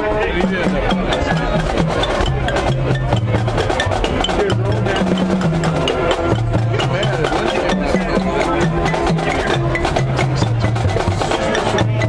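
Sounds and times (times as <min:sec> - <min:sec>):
drumline beat: 0:00.0 - 0:12.0.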